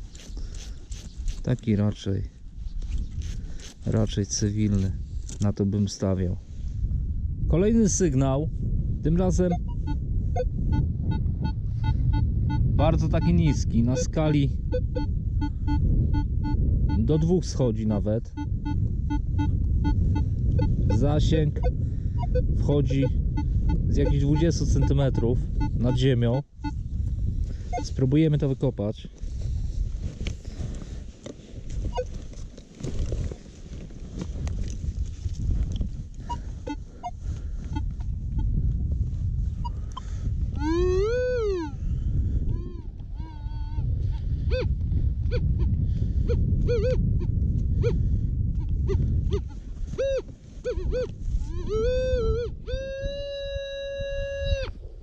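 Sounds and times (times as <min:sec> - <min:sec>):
metal detector short beeps: 0:09.5 - 0:17.3
metal detector tones: 0:09.5 - 0:17.3, 0:31.9 - 0:32.1.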